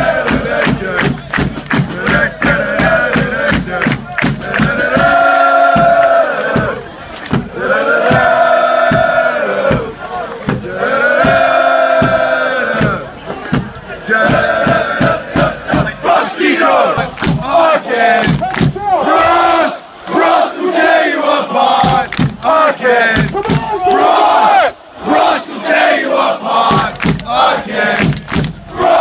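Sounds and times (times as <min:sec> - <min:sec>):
football crowd chanting: 0:00.0 - 0:29.0.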